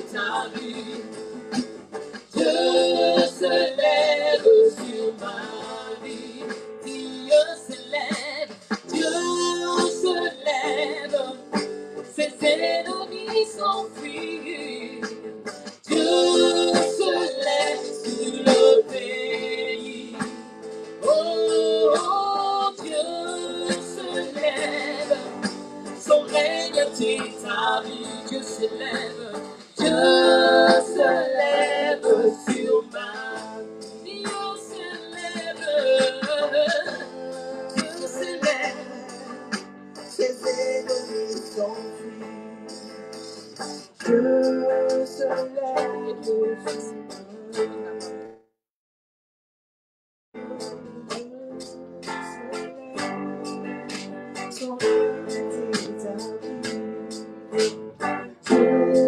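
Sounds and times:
instrumental accompaniment: 0:00.0 - 0:48.4, 0:50.4 - 0:59.0
backing singers: 0:02.4 - 0:07.4, 0:15.9 - 0:20.3, 0:21.0 - 0:39.2
woman singing lead: 0:02.4 - 0:15.2, 0:15.9 - 0:20.3, 0:21.0 - 0:39.5, 0:44.0 - 0:48.1, 0:50.4 - 0:53.7, 0:54.4 - 0:56.8.

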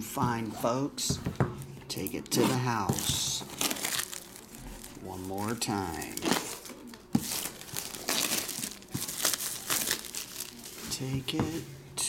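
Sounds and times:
plastic wrap crinkling: 0:02.0 - 0:11.1.

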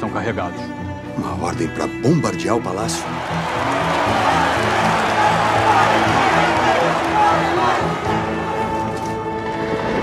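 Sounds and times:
film score music: 0:00.0 - 0:10.0
crowd cheering and shouting: 0:03.0 - 0:09.0.

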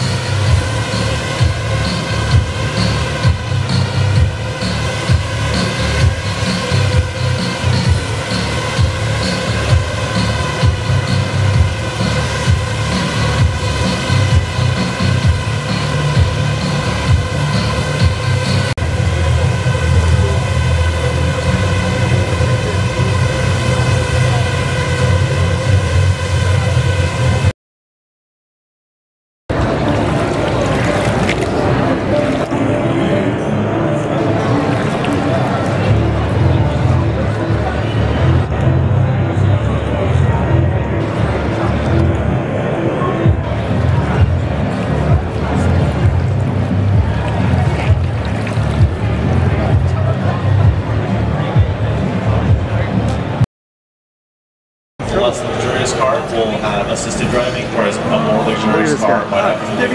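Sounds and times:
murmur of voices: 0:00.0 - 0:27.4, 0:29.5 - 0:53.4, 0:55.0 - 0:59.9
drone propellers whining: 0:00.0 - 0:27.5
loud music with heavy beat: 0:00.0 - 0:27.5, 0:43.2 - 0:53.4
water churning and splashing: 0:29.5 - 0:33.7, 0:34.3 - 0:36.3, 0:44.6 - 0:49.4.

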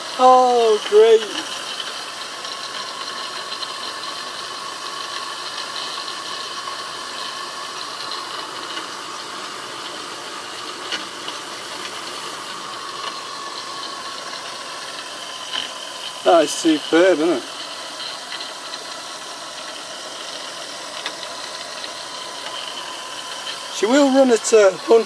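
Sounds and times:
steam turbine hiss and whine: 0:00.0 - 0:25.0.

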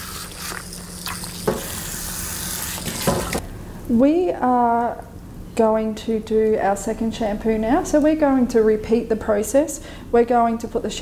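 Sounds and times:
water spraying and splashing: 0:00.0 - 0:03.4.

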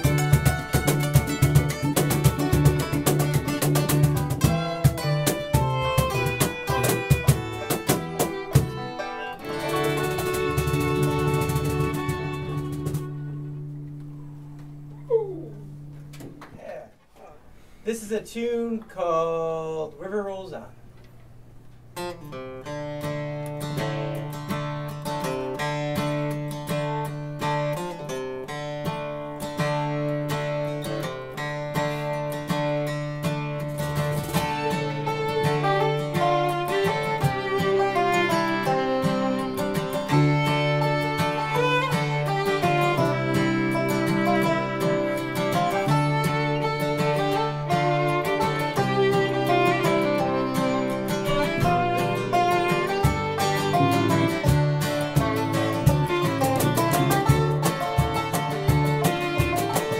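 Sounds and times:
fiddle: 0:00.0 - 0:14.4, 0:22.6 - 0:59.9
other plucked strings: 0:00.0 - 0:17.8, 0:18.4 - 0:59.9
upright bass: 0:00.0 - 0:20.8, 0:31.6 - 0:59.9
acoustic guitar: 0:00.0 - 0:59.9.

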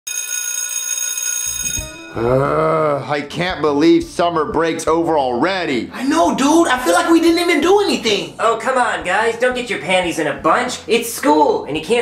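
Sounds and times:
electric school bell ringing: 0:00.1 - 0:02.3.

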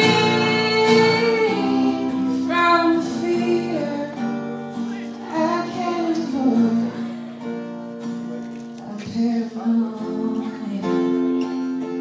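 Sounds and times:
woman singing: 0:00.0 - 0:04.4, 0:05.2 - 0:07.3, 0:08.8 - 0:11.8
acoustic guitar: 0:00.0 - 0:12.0.

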